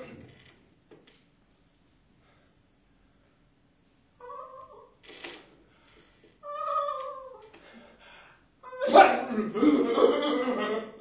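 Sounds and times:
man wailing: 0:08.7 - 0:11.0
man yelling harshly: 0:08.8 - 0:09.9.

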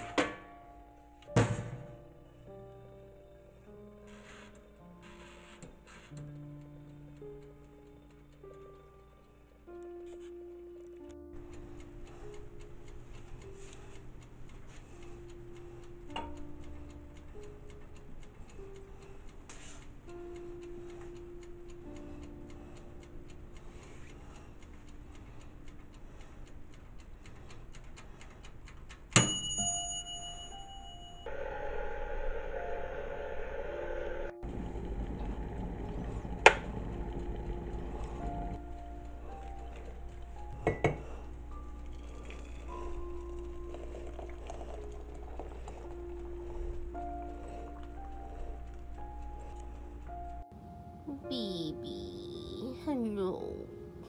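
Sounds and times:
background music: 0:00.0 - 0:25.2, 0:29.2 - 0:54.0
mechanical timer ticking: 0:02.5 - 0:31.3, 0:34.4 - 0:50.5
timer bell dinging: 0:29.1 - 0:31.4.

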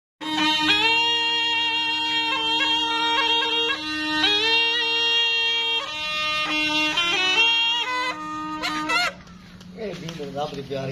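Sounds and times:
drone: 0:00.2 - 0:09.4
reedy pipe melody: 0:00.2 - 0:09.8.

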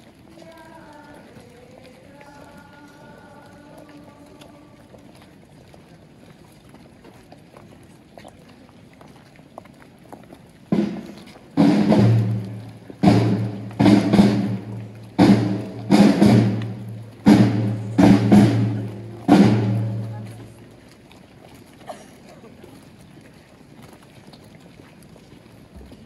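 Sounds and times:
drums beating slow rhythm: 0:10.7 - 0:20.7.

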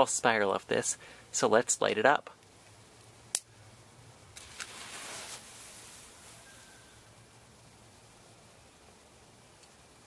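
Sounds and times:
whooshing hiss of flame: 0:04.3 - 0:06.8.

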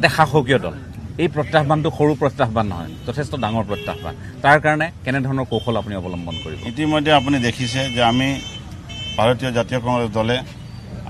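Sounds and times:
man talking into a microphone: 0:00.0 - 0:08.6, 0:09.2 - 0:10.6.

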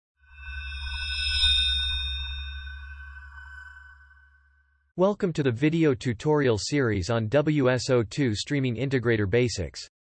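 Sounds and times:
bright ringing high tones: 0:00.2 - 0:04.8
low electronic drone: 0:00.2 - 0:04.9.

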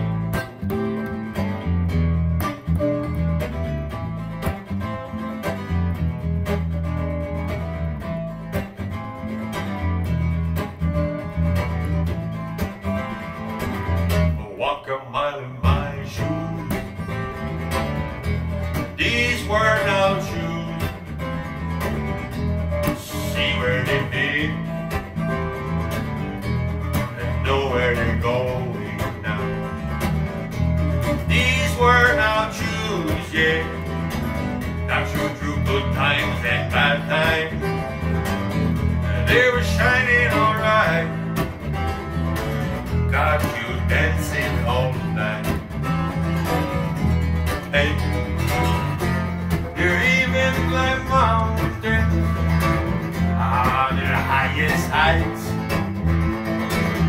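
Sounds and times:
acoustic guitar strumming: 0:00.0 - 0:14.7, 0:15.6 - 0:57.0
electric bass: 0:00.0 - 0:14.7, 0:15.5 - 0:57.0.

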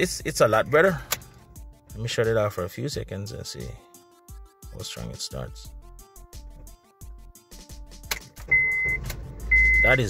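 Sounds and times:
car engine starting and running: 0:08.0 - 0:10.0
car warning chime beeping: 0:08.5 - 0:10.0.

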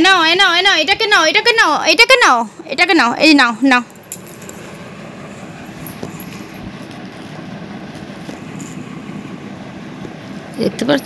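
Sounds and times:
low rumbling noise: 0:00.0 - 0:11.0.

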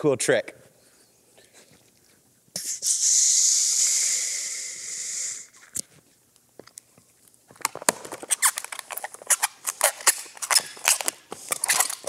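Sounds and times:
balloon squeaking and creaking: 0:07.7 - 0:12.0.

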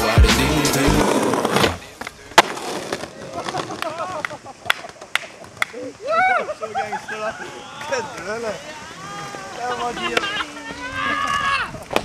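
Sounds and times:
background music: 0:00.0 - 0:01.3
skateboard clack: 0:00.0 - 0:05.8
skateboard rolling on stone: 0:00.0 - 0:05.8.

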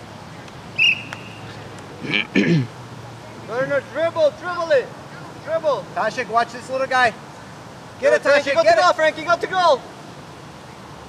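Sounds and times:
referee's whistle blast: 0:00.8 - 0:01.5.

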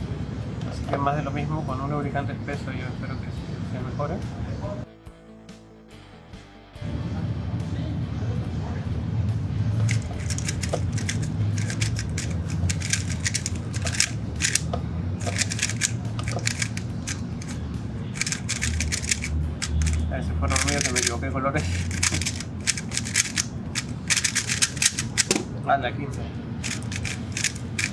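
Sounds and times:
plastic puzzle cube clacking: 0:09.9 - 0:17.6, 0:18.2 - 0:25.4, 0:26.6 - 0:27.9.

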